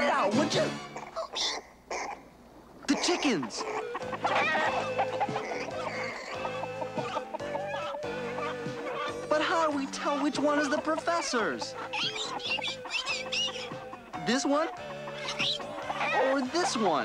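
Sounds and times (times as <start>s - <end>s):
cartoon chickens clucking: 0.9s - 17.0s
background music with bass line: 3.8s - 17.0s.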